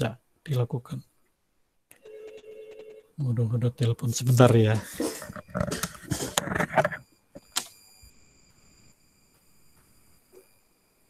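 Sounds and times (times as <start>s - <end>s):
faint high-pitched whine: 0.0s - 11.0s
rustling and knocking: 4.8s - 7.0s
sharp click: 7.4s - 7.8s.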